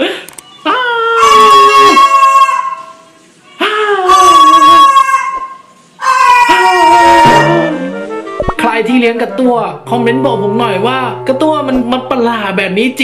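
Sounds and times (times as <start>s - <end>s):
cockatoo crying: 0.6s - 3.0s, 3.6s - 8.1s.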